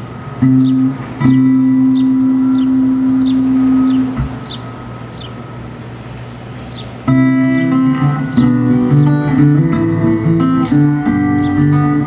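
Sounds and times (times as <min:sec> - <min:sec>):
bird chirping: 0:00.4 - 0:05.5, 0:06.6 - 0:07.0, 0:08.2 - 0:09.4, 0:11.2 - 0:11.7
acoustic guitar chord strummed: 0:00.4 - 0:06.0, 0:07.0 - 0:12.0.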